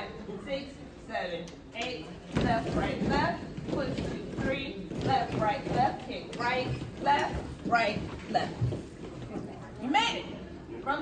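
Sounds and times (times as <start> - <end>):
footsteps on stage platform: 1.9 - 9.7.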